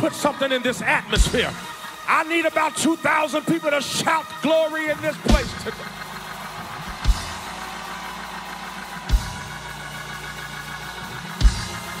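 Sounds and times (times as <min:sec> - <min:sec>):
organ chords: 0:00.0 - 0:12.0.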